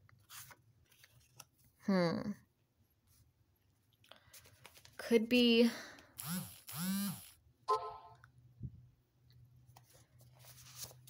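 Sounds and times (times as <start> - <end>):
woman speaking: 1.8 - 2.4, 5.0 - 5.9.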